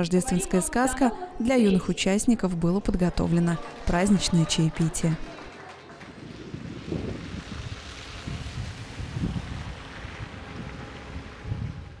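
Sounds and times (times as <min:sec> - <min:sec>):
wind on microphone: 0:06.0 - 0:12.0.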